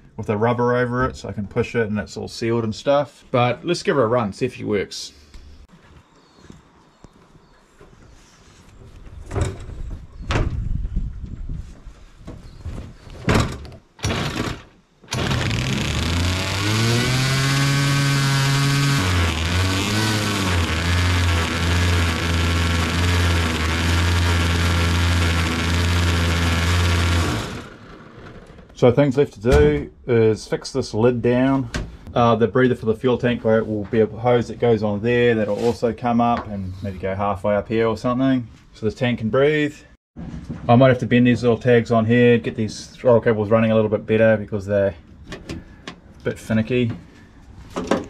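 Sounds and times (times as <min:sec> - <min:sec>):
two-stroke engines running loud: 0:15.2 - 0:27.8.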